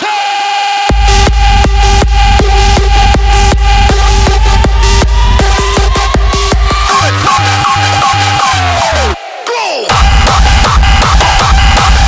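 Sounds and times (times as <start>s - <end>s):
crowd shout sample: 0.0s - 12.0s
distorted kick drum pattern: 0.9s - 9.2s, 9.9s - 12.0s.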